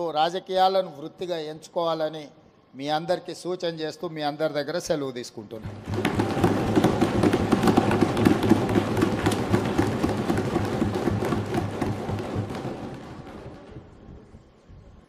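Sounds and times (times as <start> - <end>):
audience applause: 5.9 - 13.6.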